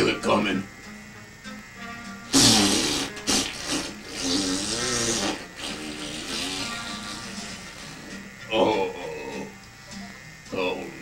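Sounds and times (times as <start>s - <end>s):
comic fart sound: 2.2s - 8.7s.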